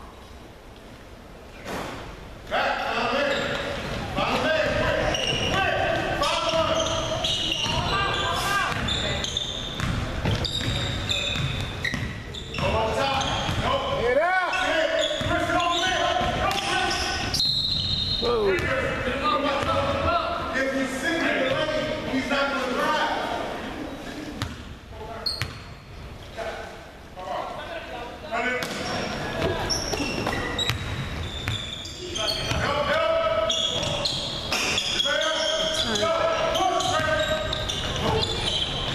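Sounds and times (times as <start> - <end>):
sneakers squeaking: 2.8 - 26.4, 28.6 - 38.9
players calling out: 3.2 - 22.6
high whistle: 17.3 - 18.4.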